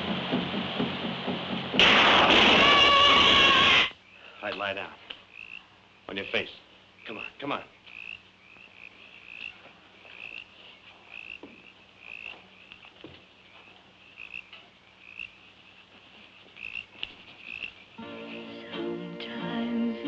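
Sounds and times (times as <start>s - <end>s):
music: 0.0s - 2.0s, 18.0s - 20.0s
soft rustles: 15.8s - 17.8s.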